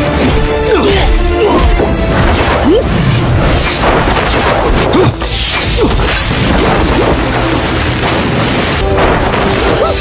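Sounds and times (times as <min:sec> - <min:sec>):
film fight music: 0:00.0 - 0:10.0.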